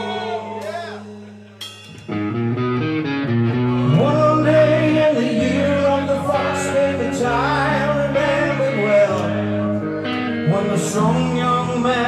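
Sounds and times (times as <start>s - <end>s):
electric guitar: 0.0s - 12.0s
person singing: 3.5s - 12.0s.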